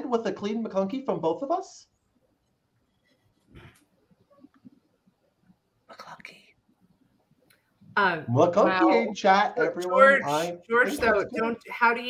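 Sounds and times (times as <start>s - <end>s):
faint whispered voice: 5.9s - 6.6s, 9.9s - 11.1s.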